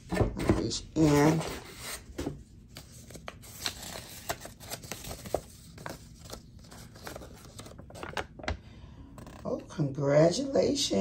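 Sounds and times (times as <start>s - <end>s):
paper crinkling: 2.7s - 8.6s.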